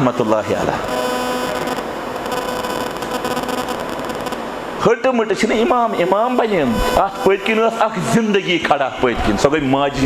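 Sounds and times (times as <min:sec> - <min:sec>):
steady hiss and hum: 0:00.0 - 0:10.0
faint ringing tone: 0:00.8 - 0:04.4, 0:05.8 - 0:07.6.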